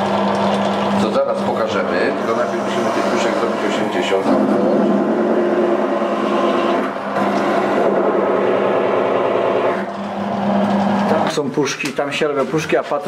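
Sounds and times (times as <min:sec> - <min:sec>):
drill press motor humming: 0:00.0 - 0:11.3.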